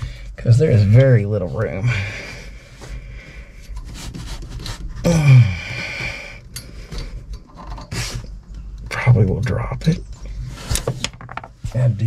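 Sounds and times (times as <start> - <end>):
faint rubbing: 0.0 - 5.1.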